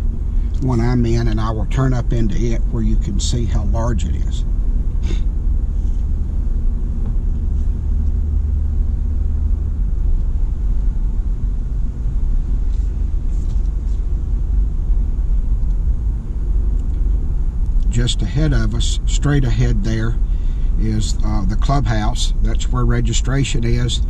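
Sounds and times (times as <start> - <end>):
car engine rumble: 0.0 - 24.0
tyres on road: 0.0 - 24.0.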